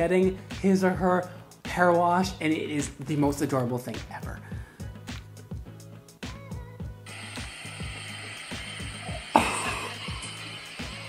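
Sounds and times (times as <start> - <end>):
music with steady beat: 0.0 - 11.0
water spraying from sink sprayer: 7.1 - 11.0.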